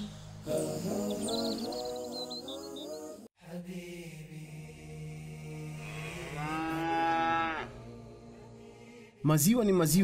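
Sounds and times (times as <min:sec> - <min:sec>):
cow mooing: 0:05.8 - 0:07.8.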